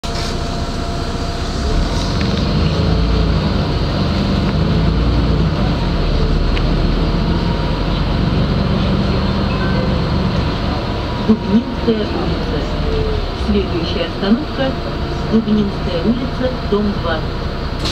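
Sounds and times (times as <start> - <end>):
bus engine drone: 0.0 - 17.9
road noise: 0.0 - 17.9.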